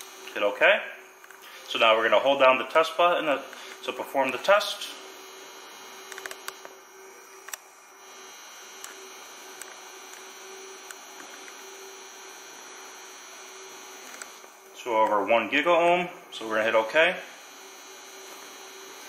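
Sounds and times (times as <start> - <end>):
electrical hum: 0.0 - 19.0
faint high whine: 0.0 - 19.0.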